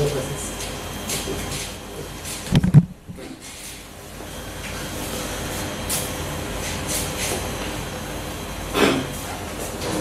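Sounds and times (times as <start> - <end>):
rumbling background noise with hum: 0.0 - 4.8.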